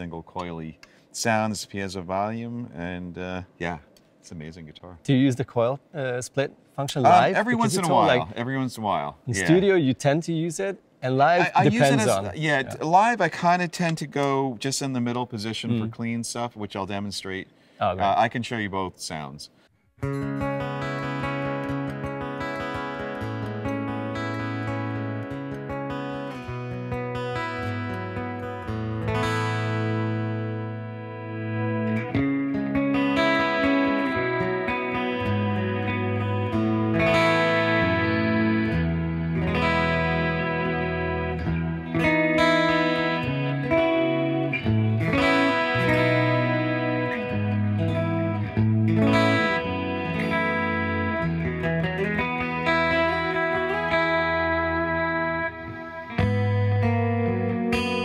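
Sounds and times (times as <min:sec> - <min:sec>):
clean electric guitar chords and notes: 0:11.4 - 0:12.8, 0:20.0 - 0:58.0.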